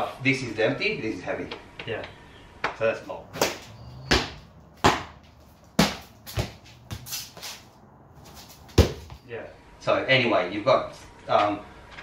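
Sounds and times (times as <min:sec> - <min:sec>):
feet landing on concrete: 0:03.3 - 0:09.3.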